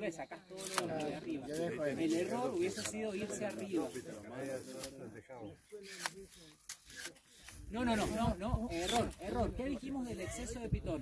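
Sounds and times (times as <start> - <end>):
group talking: 0.0 - 11.0.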